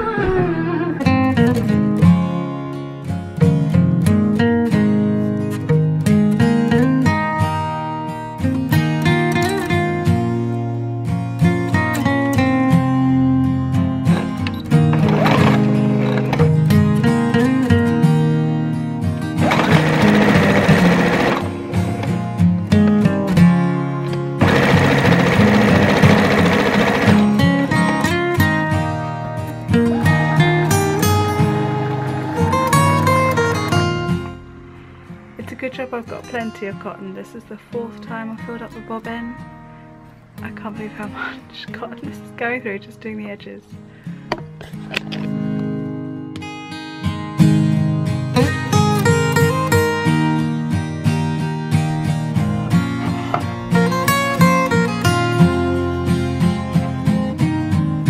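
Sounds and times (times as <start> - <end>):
background music: 0.0 - 58.0
electric sewing machine running: 15.0 - 16.4, 19.4 - 22.1, 24.4 - 28.2.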